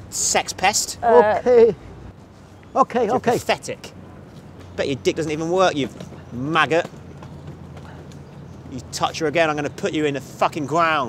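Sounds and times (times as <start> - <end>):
outdoor background noise: 0.0 - 11.0
man's voice: 0.2 - 1.8, 2.8 - 3.8.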